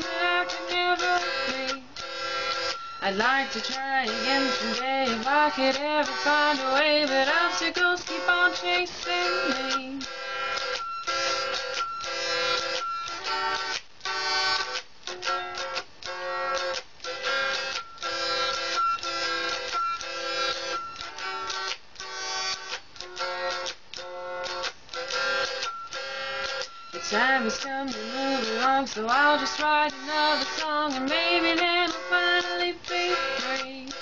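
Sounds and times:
electric guitar strumming chords: 0.0s - 34.0s.

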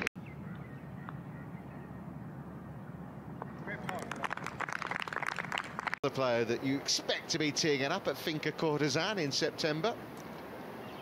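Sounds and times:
distant voices: 0.4s - 9.4s.

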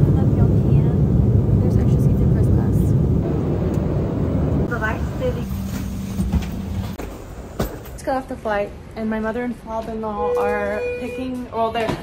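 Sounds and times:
airliner cabin rumble: 0.0s - 7.9s.

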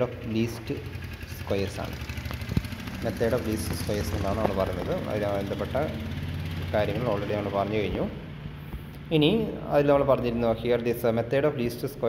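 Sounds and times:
person speaking: 2.9s - 12.0s.

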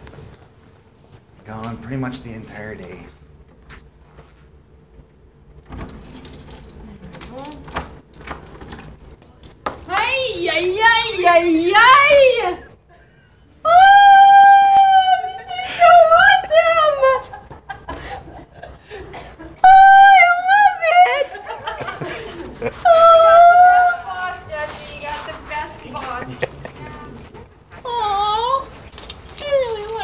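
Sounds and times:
woman exclaiming oh: 13.6s - 17.3s, 19.6s - 21.5s, 22.8s - 24.5s.

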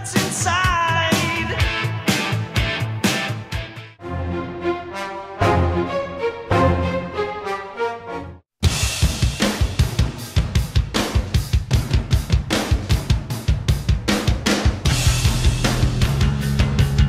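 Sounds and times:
rock drum kit beat: 0.0s - 4.0s, 8.6s - 17.0s
low bass line: 14.9s - 17.0s.

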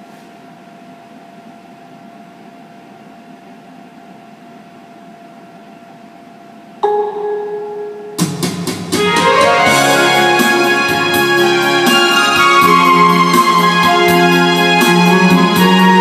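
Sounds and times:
faint steady hum: 0.0s - 8.3s
bell-like note: 6.8s - 8.3s
karaoke backing track: 6.8s - 16.0s.

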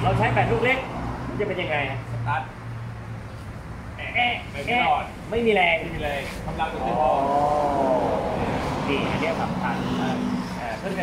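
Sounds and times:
man talking: 4.0s - 11.0s
vehicle engine passing by: 6.0s - 11.0s.

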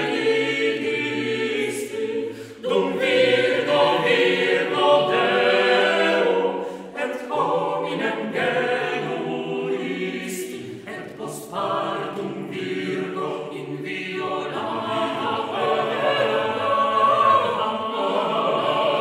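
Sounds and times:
choir singing unaccompanied: 0.0s - 19.0s.

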